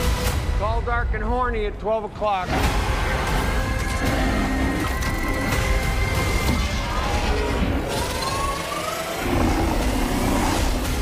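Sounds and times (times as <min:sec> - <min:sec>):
trailer orchestral score: 0:00.0 - 0:11.0.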